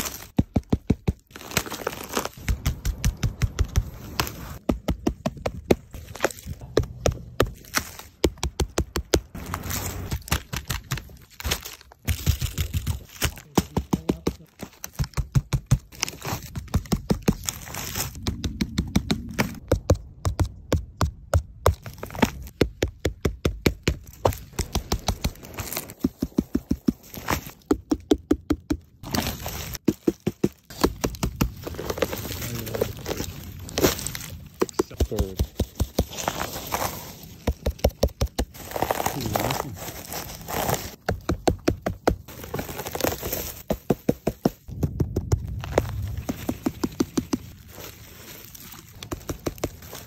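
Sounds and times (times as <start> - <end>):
fingers tapping on a mushroom: 0.3 - 1.3, 2.4 - 6.0, 6.6 - 9.4, 12.6 - 17.4, 18.2 - 21.8, 22.5 - 25.3, 25.9 - 29.0, 34.5 - 36.2, 37.4 - 38.6, 41.0 - 42.3, 43.6 - 47.5
fingertip tapping on mushrooms: 27.6 - 28.9.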